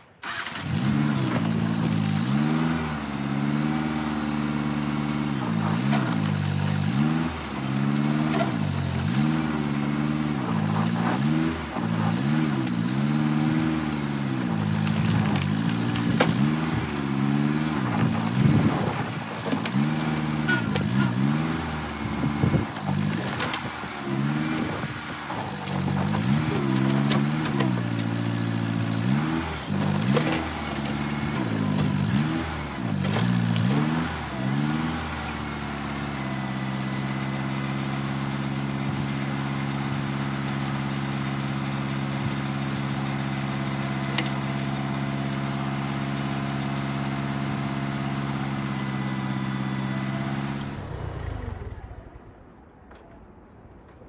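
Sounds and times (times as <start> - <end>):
tractor engine revving: 0.0 - 52.5.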